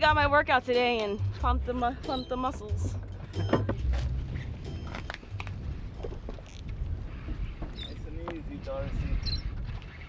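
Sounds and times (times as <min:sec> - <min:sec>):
boat noise: 0:00.0 - 0:10.0
wind: 0:00.0 - 0:10.0.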